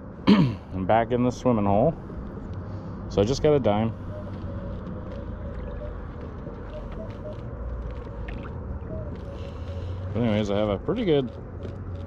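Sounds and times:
water sloshing while wading: 0:05.2 - 0:10.1.

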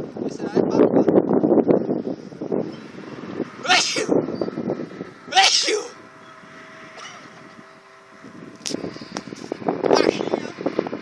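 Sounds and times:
model plane motor whine: 0:01.9 - 0:05.3, 0:05.9 - 0:11.0.

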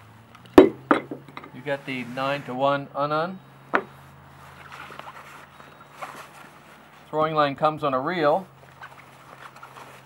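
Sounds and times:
fabric bag rustling: 0:04.4 - 0:07.1, 0:08.6 - 0:10.0.

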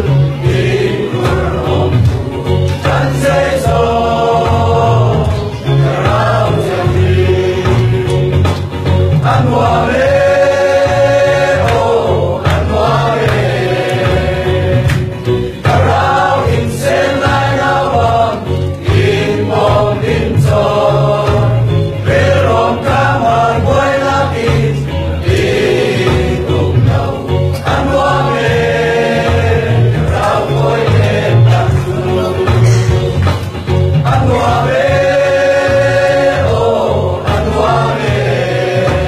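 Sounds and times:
group singing worship song: 0:00.0 - 0:39.0
rhythmic bass accompaniment: 0:00.0 - 0:39.0.

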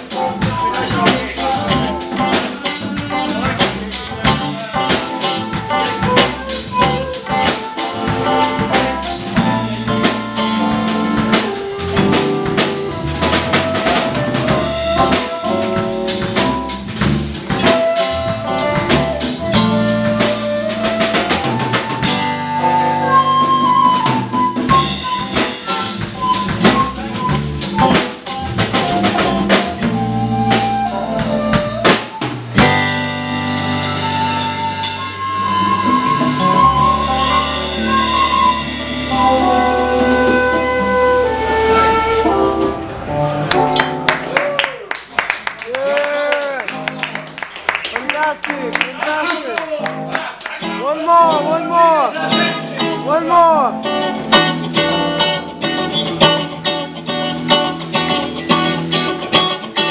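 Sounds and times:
sliding melody line: 0:00.0 - 0:44.4
electric guitar: 0:00.0 - 0:49.0, 0:49.6 - 0:59.9
drum kit beat: 0:00.0 - 0:59.9.

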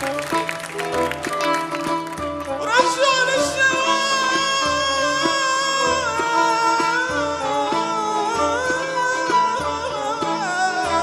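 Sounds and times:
man singing folk melody: 0:02.6 - 0:11.0.

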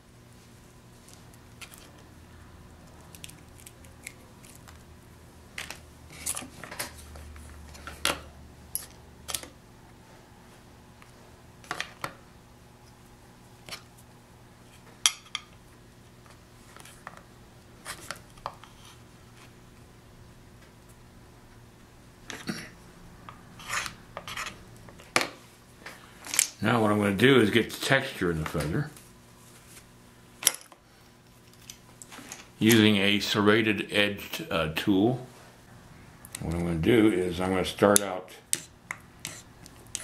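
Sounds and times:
metal tool scraping on wax: 0:23.6 - 0:24.6, 0:38.5 - 0:40.0.

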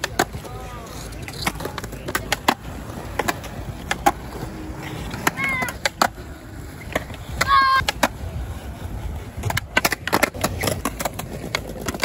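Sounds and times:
skateboard clacks: 0:00.0 - 0:12.0
skateboard wheels rolling on concrete: 0:00.0 - 0:12.0.

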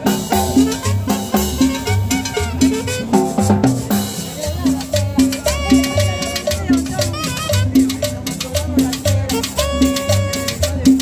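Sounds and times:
upright bass notes: 0:00.0 - 0:11.0.

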